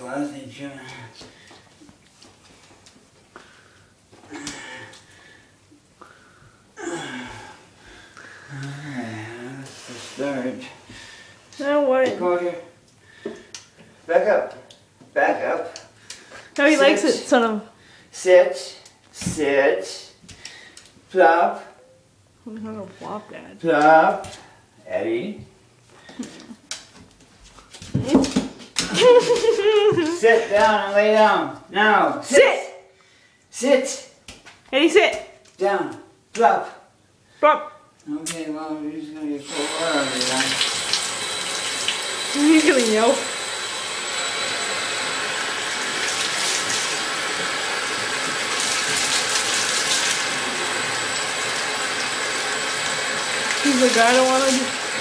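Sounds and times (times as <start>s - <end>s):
tap running into bathtub: 39.6s - 43.1s.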